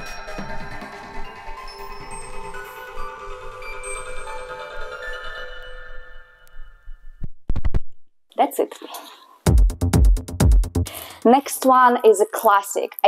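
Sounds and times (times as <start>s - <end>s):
techno track from vinyl: 0.0s - 7.8s
stylus thumps: 7.0s - 8.0s.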